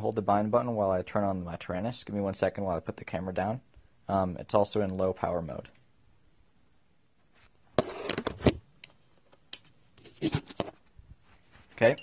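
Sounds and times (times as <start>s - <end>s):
phone handling clicks and scrapes: 7.4s - 8.6s, 9.3s - 10.8s.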